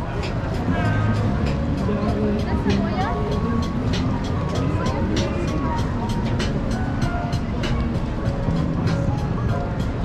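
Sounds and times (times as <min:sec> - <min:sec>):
music: 0:00.0 - 0:10.0
people talking: 0:00.0 - 0:10.0
traffic rumbling: 0:00.0 - 0:10.0.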